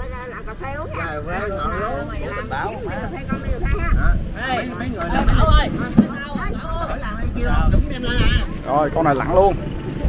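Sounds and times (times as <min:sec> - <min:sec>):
people talking: 0:00.0 - 0:10.0
wind rumbling on microphone: 0:00.0 - 0:10.0.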